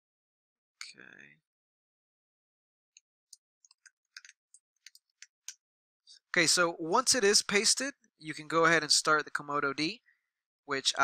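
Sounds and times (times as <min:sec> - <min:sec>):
keyboard typing: 0:03.6 - 0:05.1.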